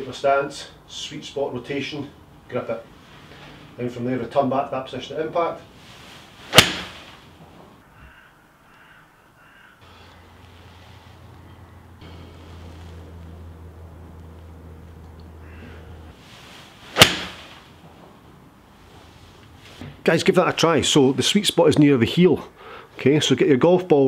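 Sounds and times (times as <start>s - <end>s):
golf iron striking ball: 6.5s - 7.1s, 16.9s - 17.6s
low steady hum: 9.8s - 20.1s.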